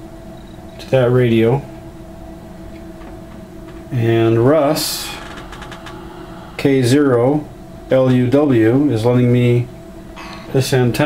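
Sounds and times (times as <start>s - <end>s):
equipment hum: 0.0s - 11.0s.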